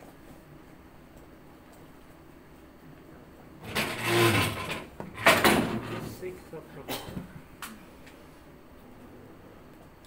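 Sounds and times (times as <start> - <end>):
scraping and rustling near microphone: 3.6 - 6.3.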